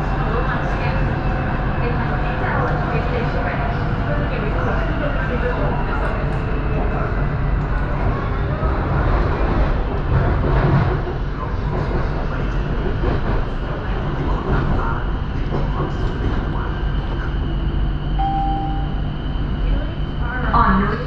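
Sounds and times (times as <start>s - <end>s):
train rumble with whine: 0.0s - 21.0s
short tone: 18.2s - 19.1s.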